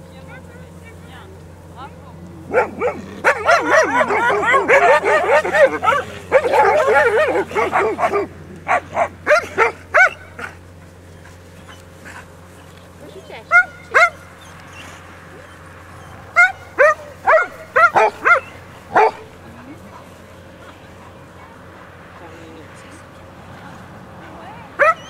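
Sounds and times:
dog yipping: 2.5s - 10.6s, 13.2s - 19.3s, 24.8s - 25.0s.

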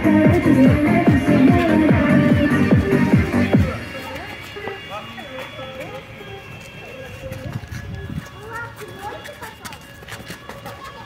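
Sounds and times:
people talking and calling: 0.0s - 11.0s.

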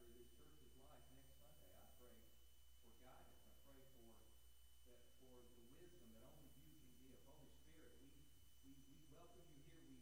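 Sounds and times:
person praying quietly: 0.0s - 2.2s, 2.8s - 4.2s, 4.9s - 10.0s
low electrical hum: 0.0s - 10.0s.

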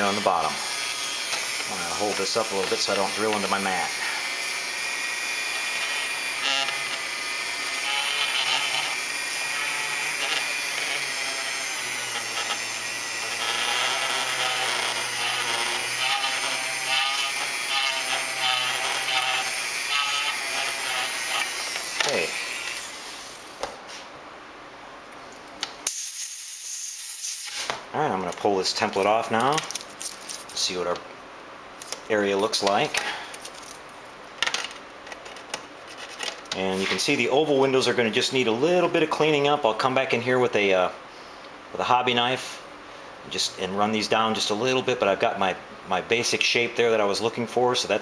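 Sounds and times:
rotary tool whining: 0.0s - 23.3s.

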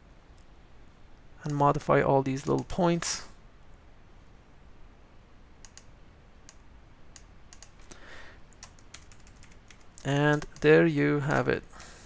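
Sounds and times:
mouse and keyboard clicks: 5.6s - 8.0s, 8.6s - 11.4s.

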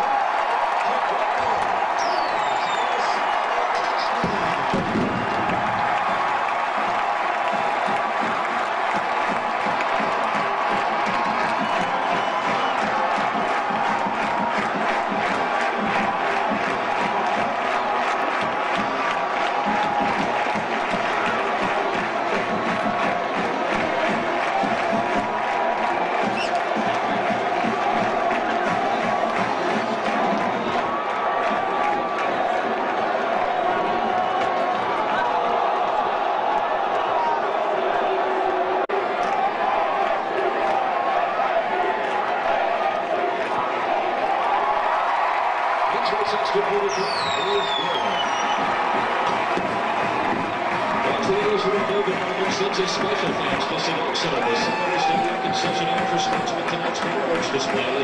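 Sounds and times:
stadium crowd cheering: 0.0s - 58.0s.

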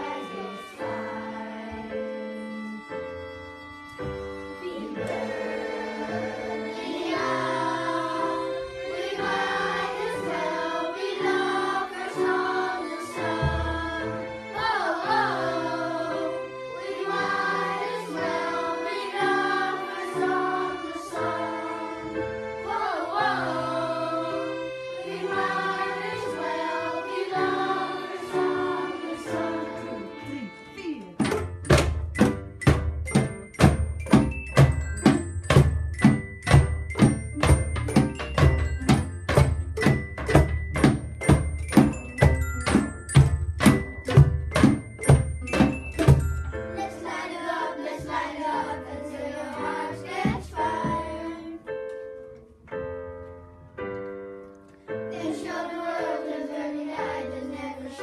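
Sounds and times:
children's choir singing: 0.0s - 3.1s, 4.0s - 31.5s, 33.1s - 51.9s, 55.0s - 58.0s
violin: 0.0s - 32.4s
loud steady percussion beat: 31.2s - 46.8s.

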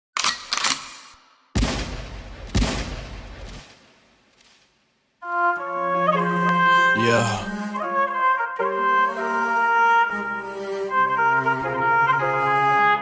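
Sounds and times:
gunshot sound effects: 1.6s - 4.7s.

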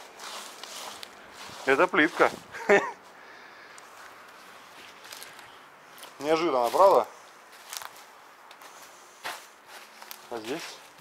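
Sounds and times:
faint outdoor hiss: 0.0s - 11.0s
footstep crunching on dry vegetation: 0.0s - 11.0s.

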